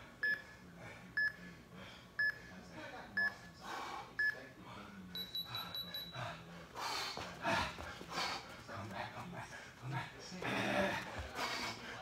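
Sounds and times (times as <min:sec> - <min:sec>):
short timer beeps: 0:05.2 - 0:06.1.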